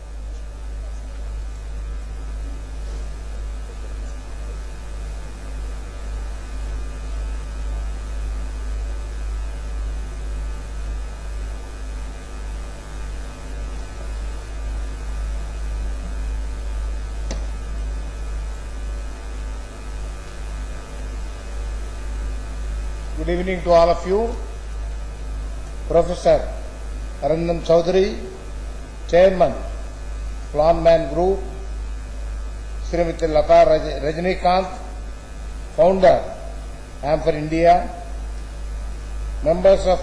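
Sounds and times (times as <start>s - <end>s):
low mains hum: 0.0s - 40.0s.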